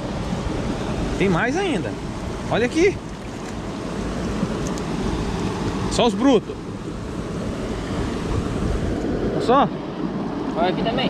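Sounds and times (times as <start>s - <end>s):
river water rushing: 0.0s - 10.6s.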